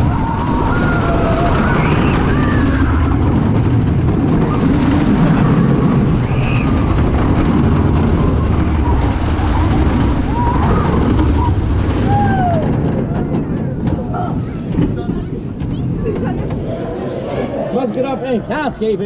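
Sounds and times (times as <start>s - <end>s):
roller coaster rumbling on track: 0.0s - 19.0s
wind buffeting microphone: 0.0s - 19.0s.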